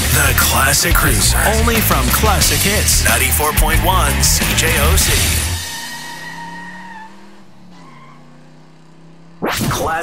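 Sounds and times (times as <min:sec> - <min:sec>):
car engine running: 0:00.0 - 0:09.8
tire squeal: 0:02.5 - 0:09.8.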